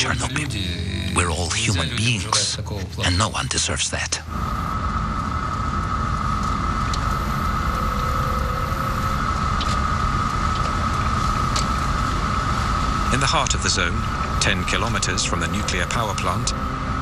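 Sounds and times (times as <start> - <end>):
car engine and road rumble: 0.0 - 17.0
steady high whine: 0.0 - 17.0.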